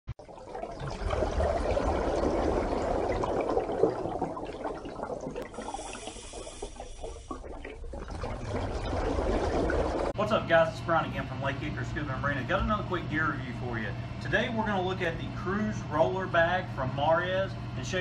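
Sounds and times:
running water: 0.2s - 10.2s.

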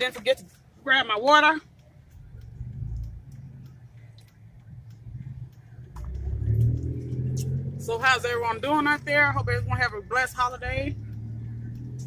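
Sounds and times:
car engine rumble: 0.0s - 12.0s.

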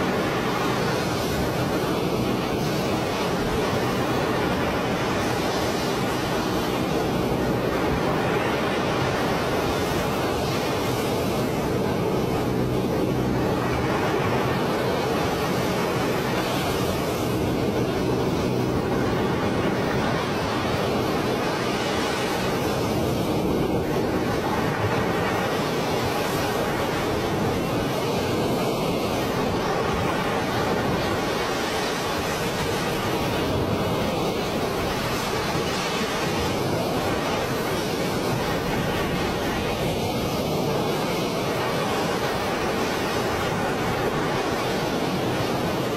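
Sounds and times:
heavy water rushing: 0.0s - 45.9s.

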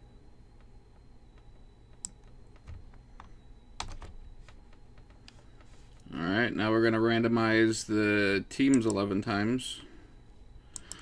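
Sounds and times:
keyboard and mouse clicks: 1.3s - 6.1s, 10.7s - 11.0s.

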